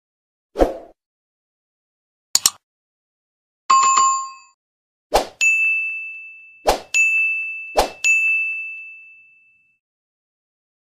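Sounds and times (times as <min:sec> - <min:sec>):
bright bell ding: 0:05.4 - 0:09.8.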